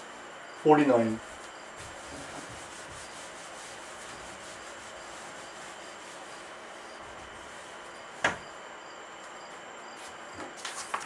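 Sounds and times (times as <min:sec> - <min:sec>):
eraser rubbing whiteboard: 0:01.0 - 0:07.7.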